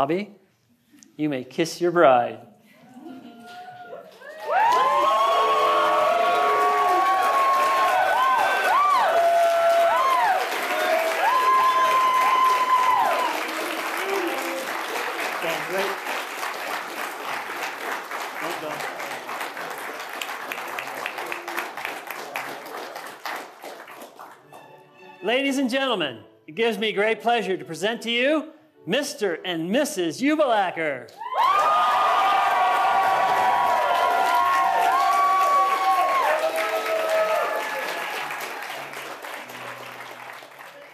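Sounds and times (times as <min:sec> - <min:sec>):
crowd cheering and whooping: 0:03.1 - 0:15.2, 0:31.2 - 0:38.8
crowd applause: 0:04.0 - 0:24.6, 0:31.3 - 0:40.9.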